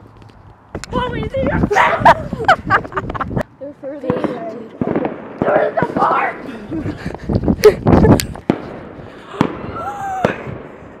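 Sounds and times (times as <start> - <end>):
people shouting: 1.7 - 2.2, 5.4 - 6.5
fireworks cracking: 4.0 - 10.8.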